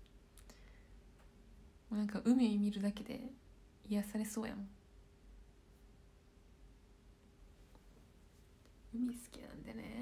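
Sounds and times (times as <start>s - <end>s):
low steady hum: 0.0s - 10.0s
woman speaking: 1.9s - 4.8s, 8.9s - 10.0s.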